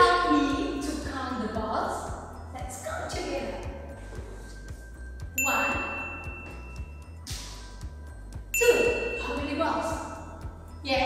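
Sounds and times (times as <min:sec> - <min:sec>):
soft background music with beat: 0:00.0 - 0:11.0
bright bell-like ding: 0:05.4 - 0:07.2, 0:08.5 - 0:10.2.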